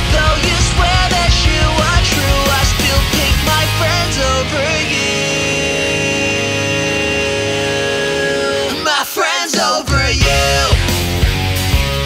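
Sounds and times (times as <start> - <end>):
drumming: 0.0 - 5.2, 9.6 - 11.9
electric guitar chord ringing: 0.0 - 9.0
person singing: 0.0 - 11.0.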